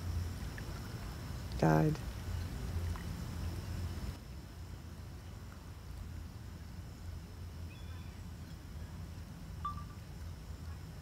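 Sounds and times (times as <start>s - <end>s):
faint high chirps: 9.6s - 10.0s.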